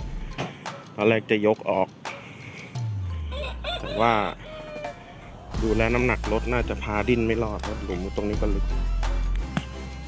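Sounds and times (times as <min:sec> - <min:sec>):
rooster crowing: 0:03.1 - 0:05.6.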